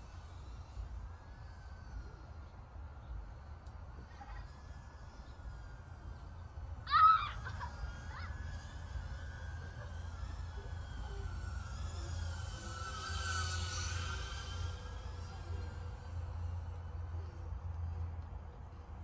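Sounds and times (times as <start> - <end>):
drone propellers whining: 0.0 - 19.0.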